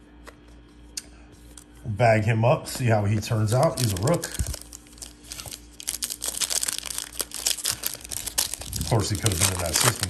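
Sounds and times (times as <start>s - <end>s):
faint steady hum: 0.0s - 10.0s
foil wrapper crinkling: 3.3s - 10.0s.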